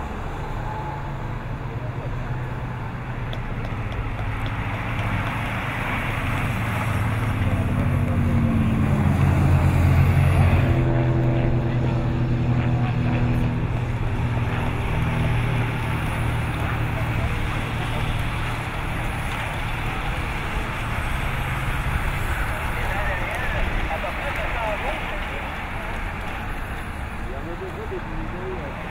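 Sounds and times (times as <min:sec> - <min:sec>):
broad rushing background: 0:00.0 - 0:28.9
motorcycle and car engines passing: 0:00.0 - 0:28.9.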